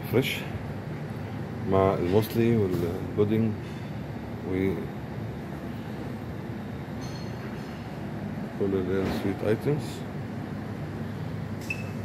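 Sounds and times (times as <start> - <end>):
low ventilation hum: 0.0 - 12.0.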